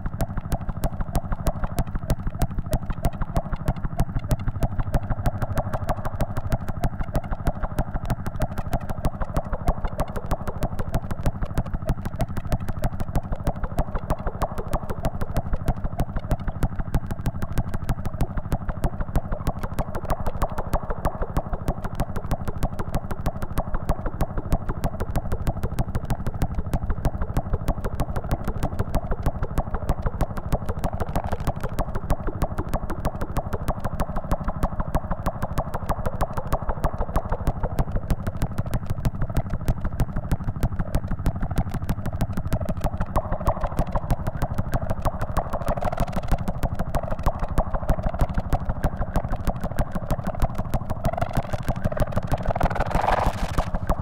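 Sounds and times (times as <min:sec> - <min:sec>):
low electronic buzz: 0:00.0 - 0:54.0
rapid train of feedback clicks: 0:37.7 - 0:54.0.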